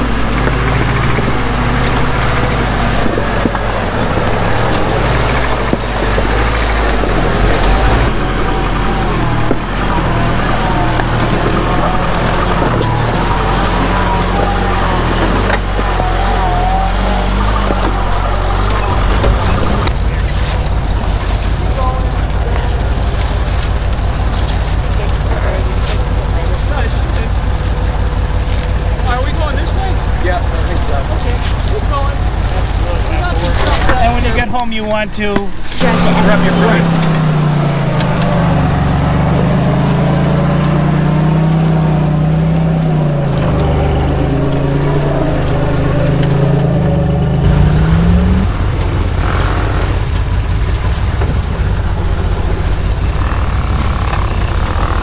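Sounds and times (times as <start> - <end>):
engine running at low speed: 0.0 - 55.0
engine with low pulse: 0.0 - 55.0
voices: 0.0 - 55.0.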